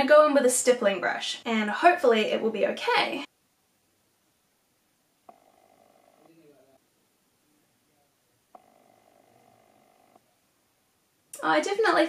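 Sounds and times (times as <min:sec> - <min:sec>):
faint steady hum: 0:03.2 - 0:12.0.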